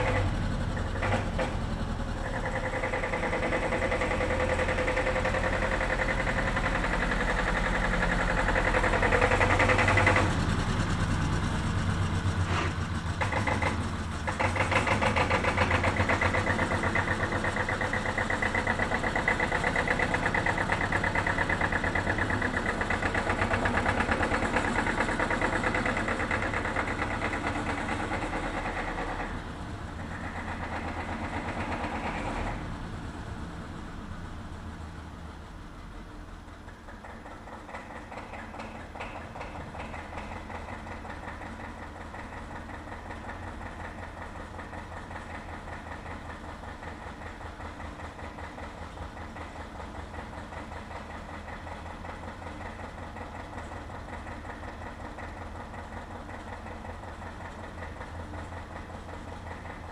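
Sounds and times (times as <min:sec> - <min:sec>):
old tractor engine running: 0:00.0 - 0:59.9.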